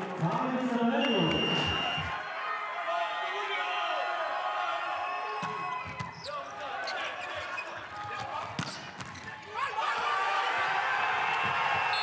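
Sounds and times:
crowd shouting and cheering: 0.0s - 12.0s
players shouting: 1.4s - 12.0s.

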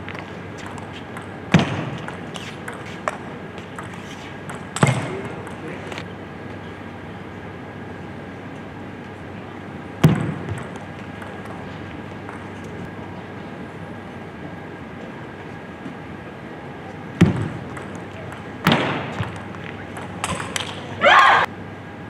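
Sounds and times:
indoor hall background: 0.0s - 22.0s.

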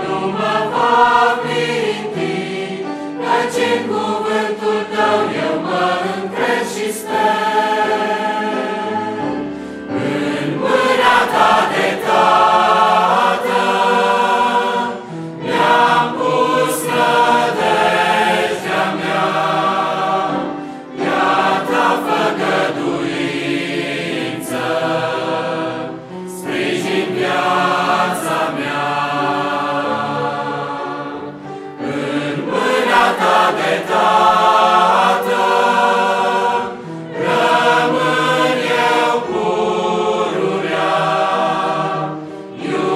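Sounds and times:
choir singing a hymn: 0.0s - 42.9s
piano accompaniment: 0.0s - 42.9s.

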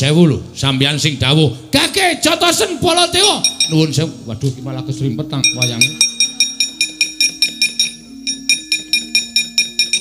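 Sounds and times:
low sustained gamelan notes: 4.8s - 10.0s.

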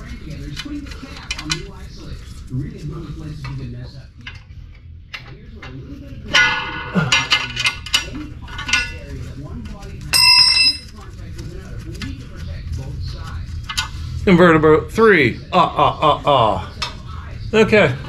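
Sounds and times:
metal tools clinking on bolts: 6.3s - 9.0s, 10.1s - 10.8s
bell-like metallic ring: 10.2s - 10.9s.

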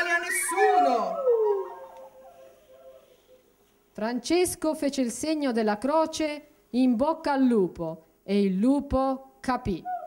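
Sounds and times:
wolf howling: 0.0s - 3.4s.

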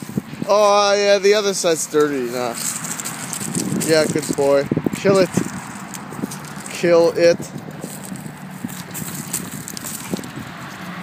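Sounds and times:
paws scuffing on gravel: 0.6s - 11.0s.

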